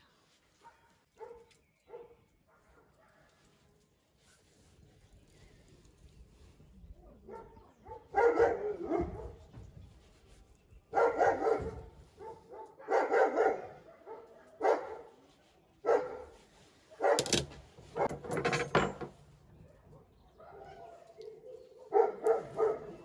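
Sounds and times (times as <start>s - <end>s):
dog barking: 0.6s - 3.4s, 7.3s - 9.4s, 10.9s - 15.2s, 15.8s - 17.2s, 20.4s - 23.0s.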